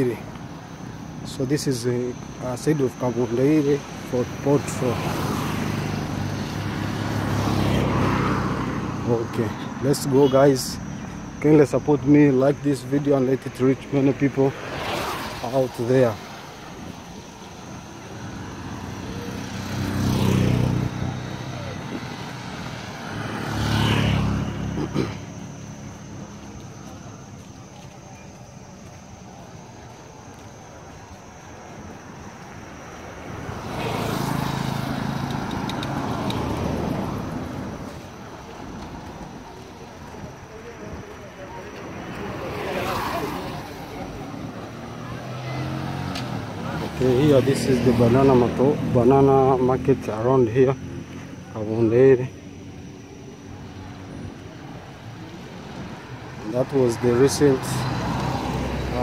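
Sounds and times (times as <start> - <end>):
street background noise: 0.0 - 59.0
vehicle engine rumbling: 15.3 - 59.0.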